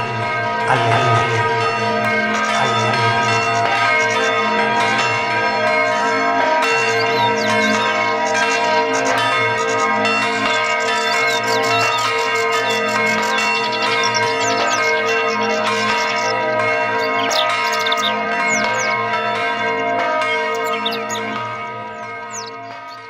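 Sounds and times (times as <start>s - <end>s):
church bells pealing: 0.0s - 23.0s.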